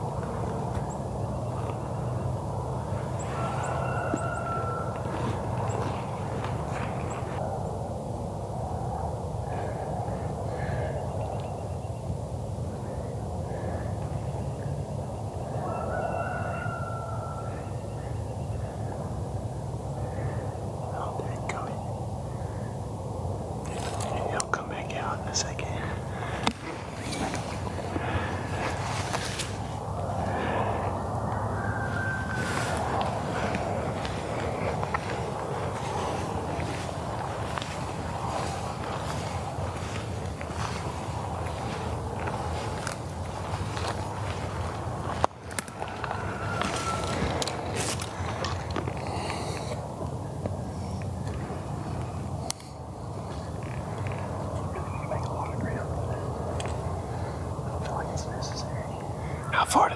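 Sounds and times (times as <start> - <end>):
rustling in dry grass: 0.0 - 11.7, 15.4 - 59.4
people whispering: 17.7 - 59.9.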